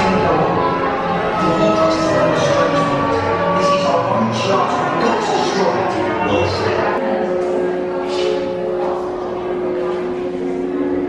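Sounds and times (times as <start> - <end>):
two-tone drone: 0.0 - 11.0.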